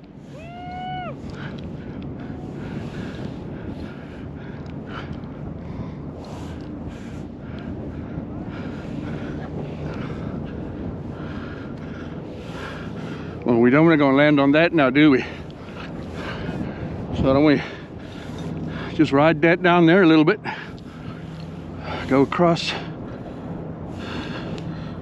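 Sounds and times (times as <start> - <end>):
wind noise on microphone: 0.0 - 25.0.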